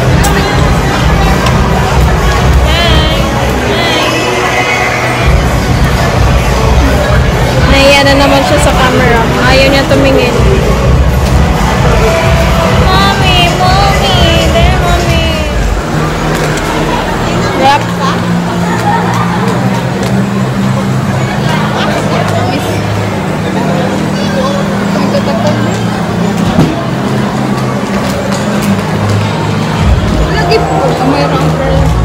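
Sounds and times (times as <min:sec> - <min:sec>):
background music with bass line: 0:00.0 - 0:23.5, 0:25.6 - 0:32.0
people chattering: 0:00.0 - 0:32.0.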